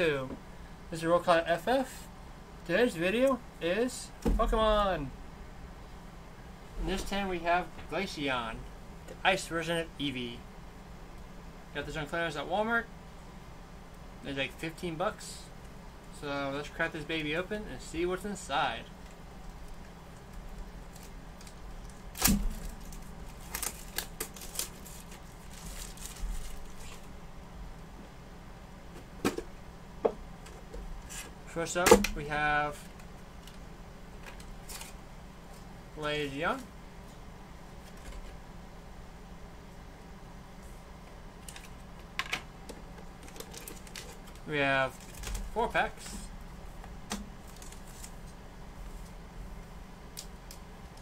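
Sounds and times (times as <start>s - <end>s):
plastic shrink wrap crinkling: 20.8s - 27.1s.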